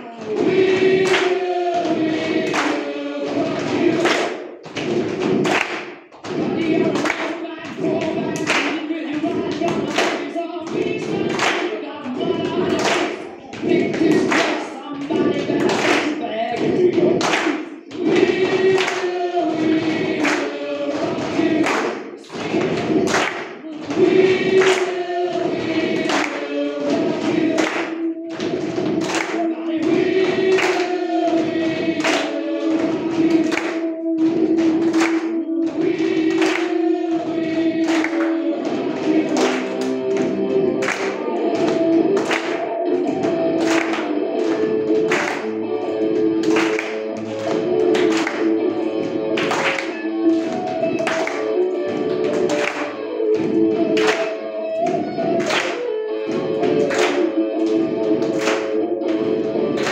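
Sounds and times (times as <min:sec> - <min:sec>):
children clapping and slapping: 0:00.0 - 0:59.9
music with choral singing: 0:00.0 - 0:59.9.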